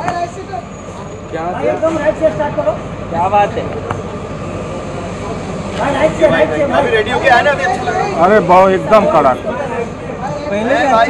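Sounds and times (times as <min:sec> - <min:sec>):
engine droning: 0:00.0 - 0:11.0
outdoor noise: 0:00.0 - 0:11.0.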